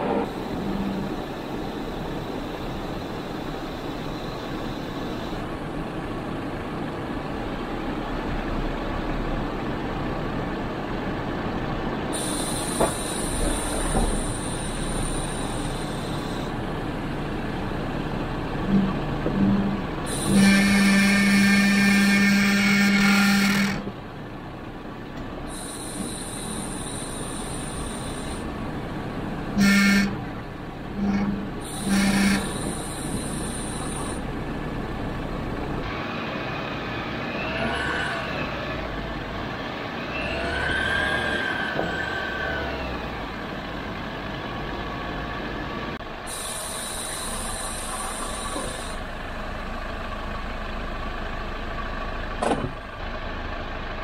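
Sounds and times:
vehicle engine on rocky trail: 0.0 - 54.0
low buzzing tone: 18.5 - 23.9, 29.5 - 35.8.

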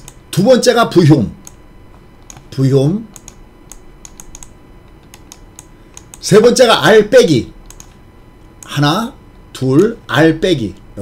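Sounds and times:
computer keyboard typing: 0.0 - 0.2, 2.2 - 2.5, 3.1 - 6.2, 7.6 - 8.0.

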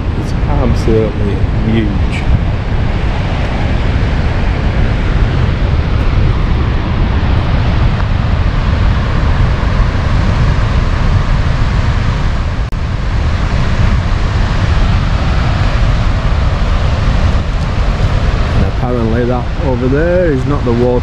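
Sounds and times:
water gushing from dam: 0.0 - 21.0
wind buffeting microphone: 0.0 - 21.0.

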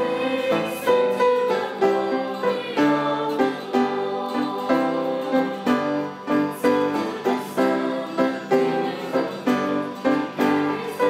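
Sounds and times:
keyboard chords: 0.0 - 11.0
small choir singing: 0.0 - 11.0.

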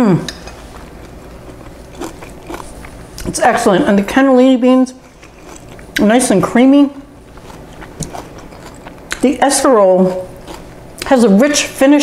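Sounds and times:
person chewing food: 0.3 - 3.4, 5.0 - 6.1, 7.1 - 9.3, 9.9 - 11.1.

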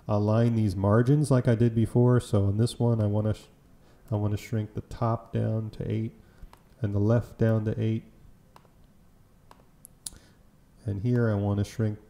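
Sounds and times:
faint computer mouse clicks: 6.4 - 6.8, 8.5 - 10.2.

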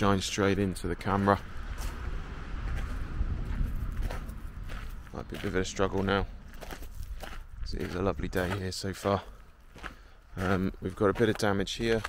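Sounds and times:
footsteps on dry earth: 0.0 - 12.0
wind on microphone: 1.4 - 8.4.

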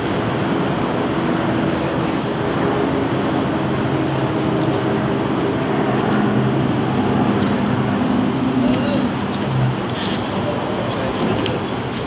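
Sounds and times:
street traffic: 0.0 - 12.0
vehicle engines humming: 0.0 - 12.0.

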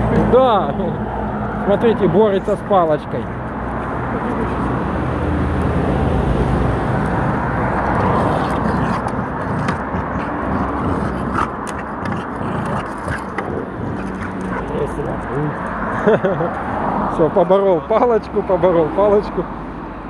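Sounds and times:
steady outdoor rumble: 0.0 - 20.0
dog chewing wooden stick: 7.0 - 16.0
stick clicks and scrapes: 7.7 - 15.7.

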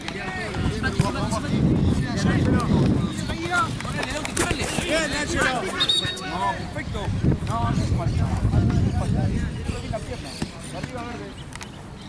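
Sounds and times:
wind noise on microphone: 0.0 - 10.7
people calling and shouting: 0.0 - 12.0.

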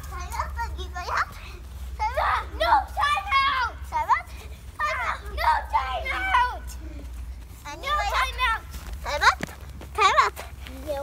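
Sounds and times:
children shouting and squealing: 0.0 - 11.0.

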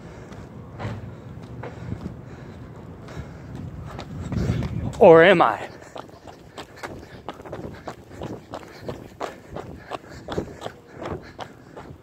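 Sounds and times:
footsteps on pavement: 0.0 - 12.0.

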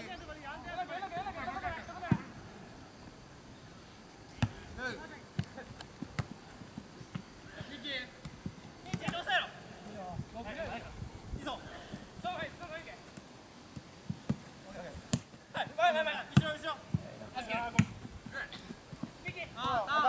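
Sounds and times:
football kicks: 4.4 - 4.6, 5.3 - 9.3, 13.1 - 15.3
players shouting: 19.2 - 20.0.

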